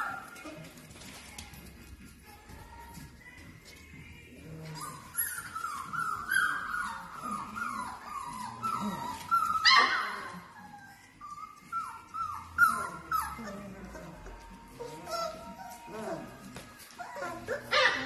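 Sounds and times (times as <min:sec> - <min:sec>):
puppies yipping and whining: 0:00.0 - 0:01.6, 0:04.3 - 0:18.0
puppy yelp: 0:04.8 - 0:18.0.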